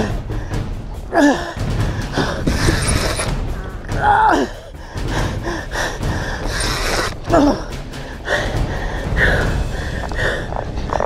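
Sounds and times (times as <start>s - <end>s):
man breathing hard and gasping: 4.4s - 10.8s.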